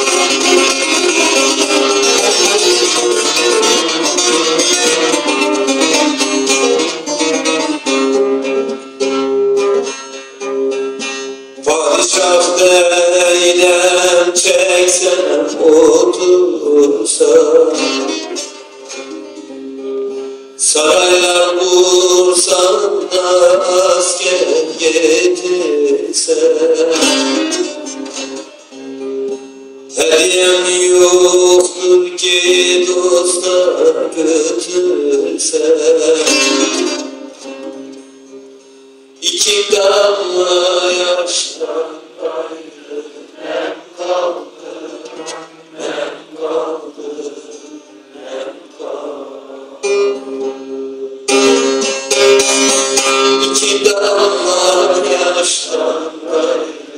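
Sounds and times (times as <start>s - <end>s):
man singing folk song: 0.0s - 9.1s, 11.0s - 19.2s, 20.6s - 28.4s, 29.9s - 37.6s, 39.2s - 48.8s, 51.2s - 56.9s
long-necked lute strumming: 0.0s - 56.9s.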